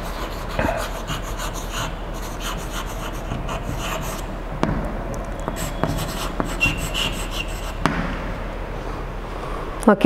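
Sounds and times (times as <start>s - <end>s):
chalk scratching on blackboard: 0.0s - 4.3s, 5.5s - 7.9s
chalk tapping on blackboard: 0.0s - 4.3s, 5.4s - 8.0s
chalk squeak: 5.5s - 7.8s.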